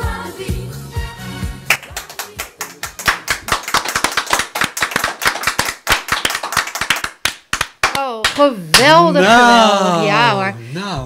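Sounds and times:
group hand clapping: 0:01.7 - 0:09.1.

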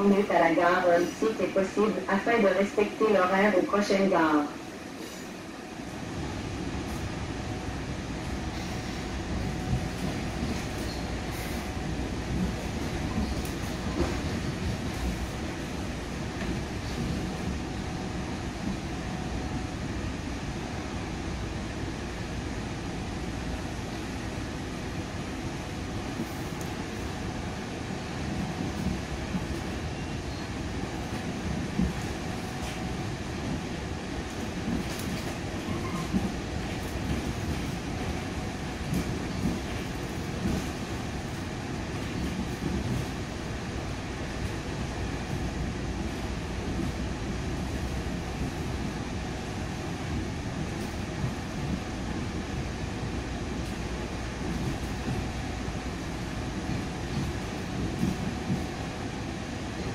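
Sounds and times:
train rumble: 0:00.0 - 0:59.9.

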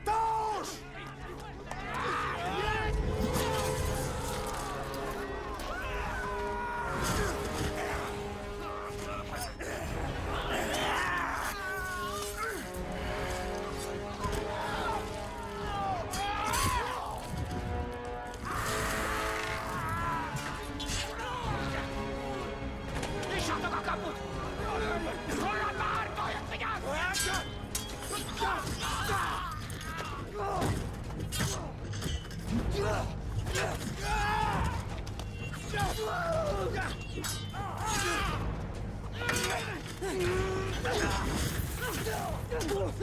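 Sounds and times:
men shouting and screaming: 0:00.0 - 0:17.7, 0:18.4 - 0:22.4, 0:23.2 - 0:31.8, 0:32.6 - 0:43.0
dramatic orchestral music: 0:00.0 - 0:43.0.

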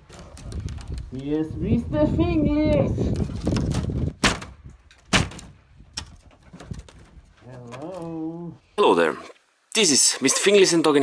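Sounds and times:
sharp blows on wooden boards: 0:03.6 - 0:07.0.

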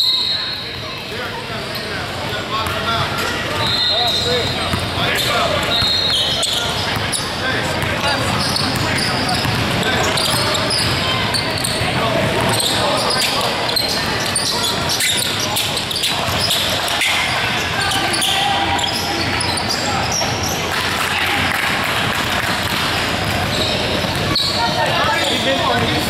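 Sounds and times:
echoing hubbub of voices: 0:00.0 - 0:26.0.

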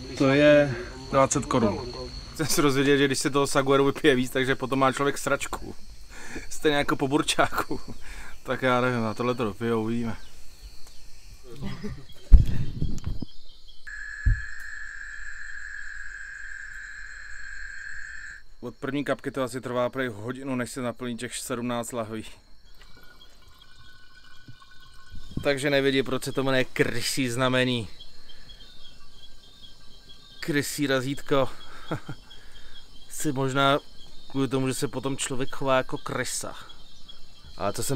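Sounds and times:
insect buzzing: 0:00.0 - 0:18.8, 0:21.9 - 0:37.9.

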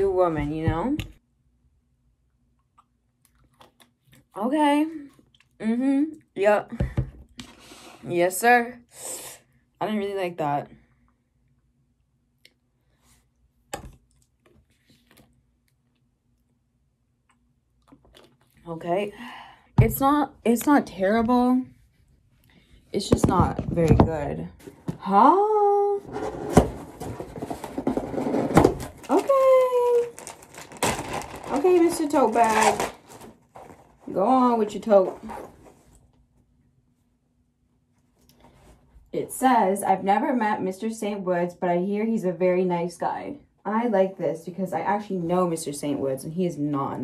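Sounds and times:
packaging rustling and rubbing: 0:26.0 - 0:36.0.

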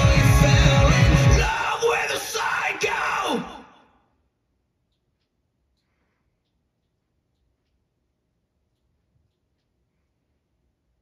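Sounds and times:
rock music with heavy beat: 0:00.0 - 0:01.7
man yelling: 0:00.0 - 0:03.8.

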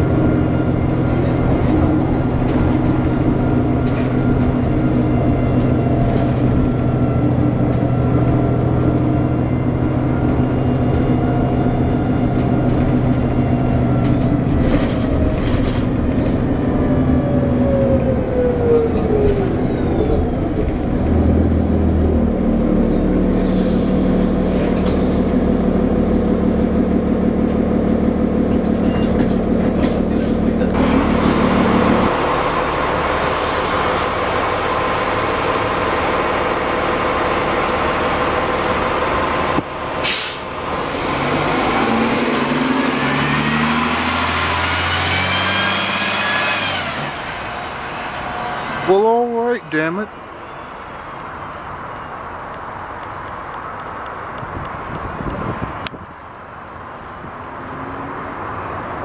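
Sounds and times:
diesel bus engine: 0:00.0 - 0:59.0
short burst of air: 0:40.0 - 0:40.5.

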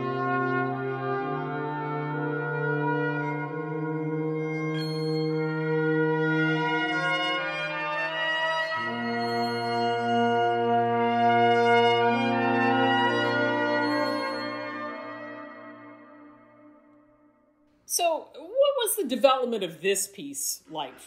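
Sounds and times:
layered trumpet tones: 0:00.0 - 0:17.6.

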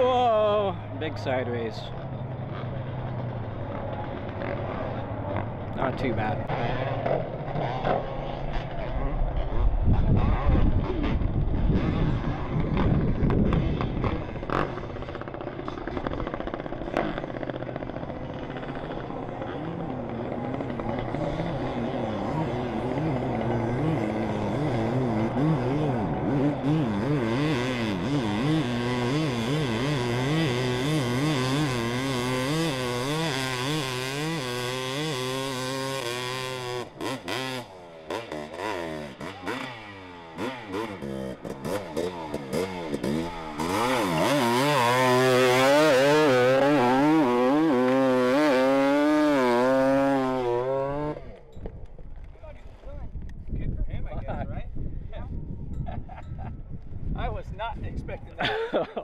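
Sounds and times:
dirt bike engine revving: 0:00.0 - 0:51.8.

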